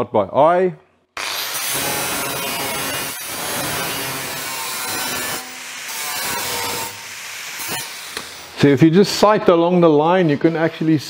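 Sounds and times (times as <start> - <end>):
angle grinder grinding metal: 1.2 - 8.7, 9.7 - 11.0.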